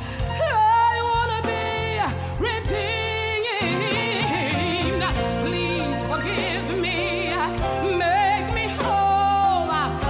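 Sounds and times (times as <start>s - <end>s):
instrumental accompaniment: 0.0s - 10.0s
woman singing with vibrato: 0.0s - 10.0s.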